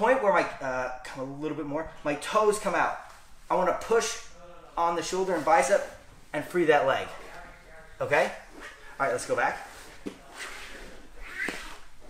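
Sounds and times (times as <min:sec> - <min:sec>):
bodies rustling on vinyl mats: 0:04.9 - 0:12.0.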